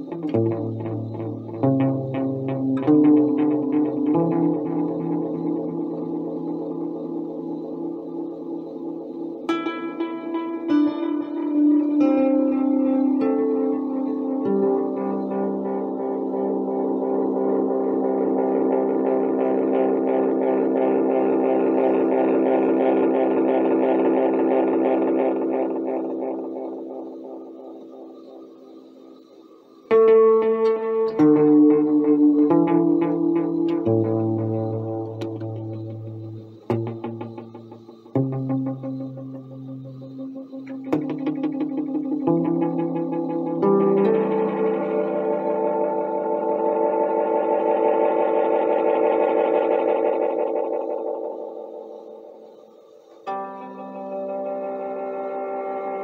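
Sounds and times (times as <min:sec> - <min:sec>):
electric guitar with tape echo: 0:00.0 - 0:56.0.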